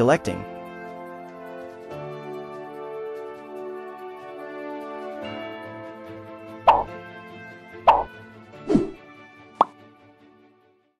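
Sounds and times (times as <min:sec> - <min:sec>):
falling whoosh-pop: 0:06.7 - 0:06.9, 0:07.9 - 0:08.1.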